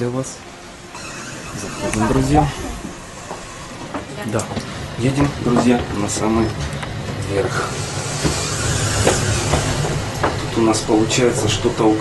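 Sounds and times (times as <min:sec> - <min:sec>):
elevator hum: 0:00.0 - 0:12.0
hiss of running noise: 0:07.2 - 0:12.0.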